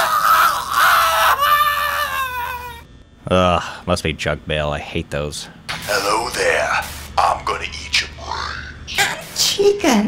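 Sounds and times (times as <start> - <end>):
man's high-pitched scream: 0.0 - 2.8.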